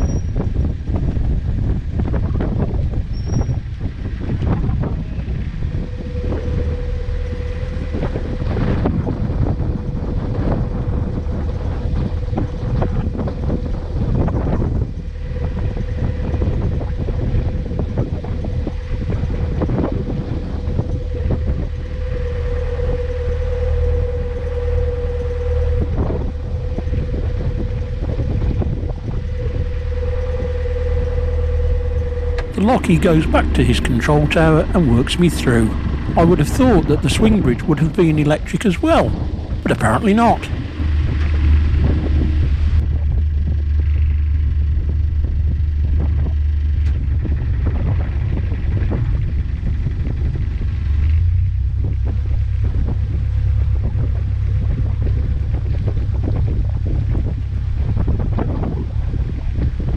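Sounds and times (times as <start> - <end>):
diesel engine rumbling: 0.0 - 59.9
steady hum: 0.0 - 59.9
wind buffeting microphone: 0.0 - 59.9.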